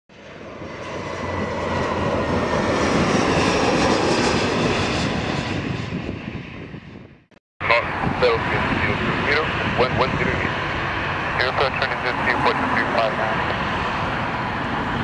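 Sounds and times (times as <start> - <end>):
jet aircraft passing over: 0.1 - 15.0
voices: 7.6 - 10.6, 11.4 - 13.6.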